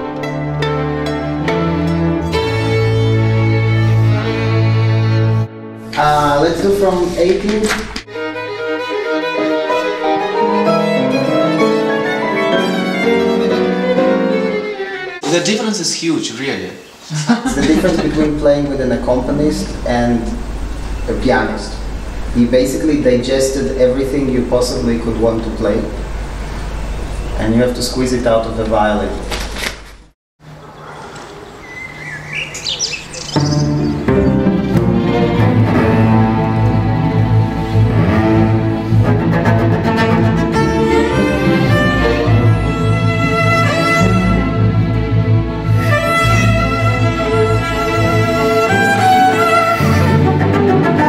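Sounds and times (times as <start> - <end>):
violin playing sustained notes: 0.0 - 7.3, 8.1 - 15.6, 17.7 - 27.6, 33.6 - 51.0
lower accompanying notes: 0.0 - 7.4, 8.1 - 15.6, 17.6 - 28.4, 30.6 - 51.0
faint outdoor ambience: 15.2 - 29.8, 30.4 - 39.2
small birds chirping: 19.6 - 22.4, 24.5 - 28.4, 30.5 - 34.5.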